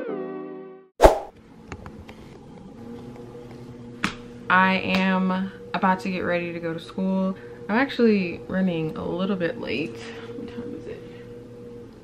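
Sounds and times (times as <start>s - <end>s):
low steady hum: 1.5s - 12.0s.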